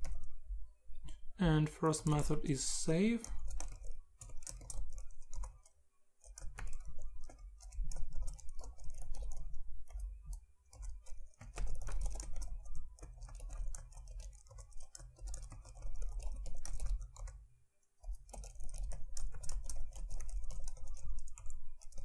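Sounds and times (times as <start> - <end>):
computer keyboard typing: 0.0 - 0.3, 1.9 - 22.0.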